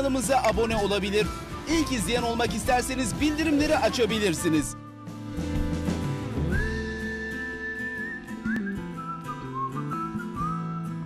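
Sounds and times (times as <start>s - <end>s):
plucked instrumental backing: 0.0s - 11.0s
whistled melody: 6.3s - 11.0s.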